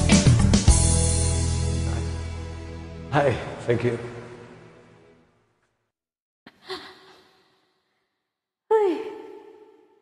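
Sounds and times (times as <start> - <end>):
woman sighing: 6.5 - 7.4.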